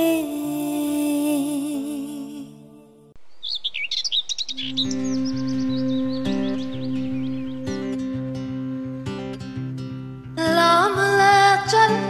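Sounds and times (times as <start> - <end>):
small birds chirping: 3.2 - 8.3
gentle acoustic guitar music: 4.5 - 12.0
song: 4.8 - 12.0.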